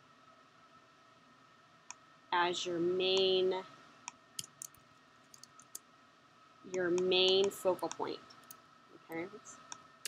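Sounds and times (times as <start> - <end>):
woman speaking: 2.3 - 3.7, 6.7 - 8.3, 9.0 - 9.5
computer keyboard typing: 4.1 - 5.8.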